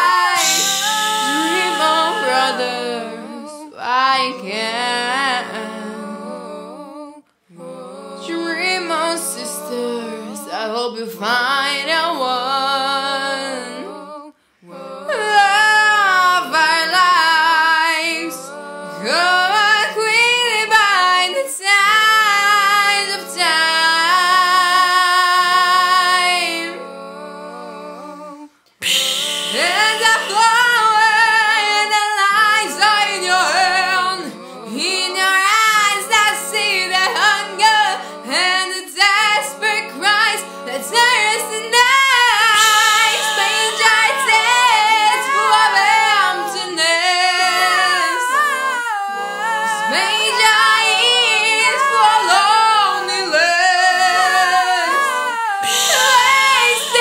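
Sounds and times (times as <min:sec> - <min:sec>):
low held bass voice: 0:00.0 - 0:03.6
a cappella female voices harmonizing: 0:00.0 - 0:57.0.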